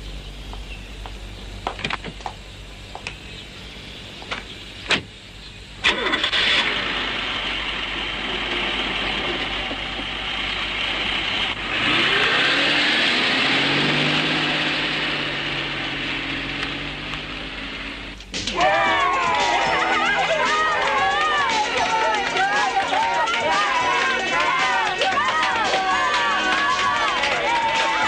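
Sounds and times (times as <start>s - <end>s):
car engine running: 0.0s - 28.0s.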